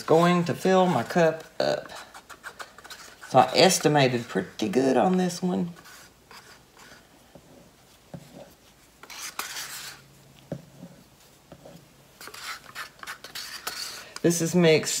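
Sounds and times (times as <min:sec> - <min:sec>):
paper and plastic cups scraping: 0:00.0 - 0:10.1, 0:10.7 - 0:15.0.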